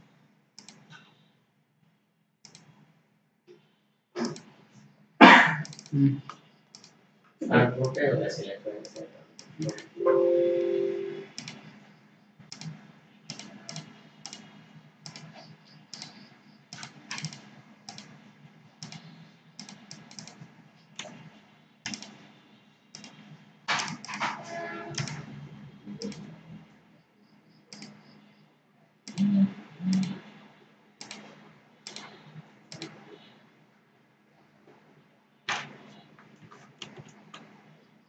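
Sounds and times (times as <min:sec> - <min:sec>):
computer mouse clicks: 0:00.6 - 0:01.1, 0:02.4 - 0:02.8, 0:04.2 - 0:04.6, 0:05.6 - 0:07.0, 0:08.8 - 0:09.9, 0:11.4 - 0:11.8, 0:12.5 - 0:18.2, 0:18.8 - 0:21.2, 0:21.8 - 0:22.3, 0:22.9 - 0:25.3, 0:26.0 - 0:26.4, 0:27.7 - 0:28.2, 0:29.0 - 0:29.3, 0:29.9 - 0:30.3, 0:31.0 - 0:33.2.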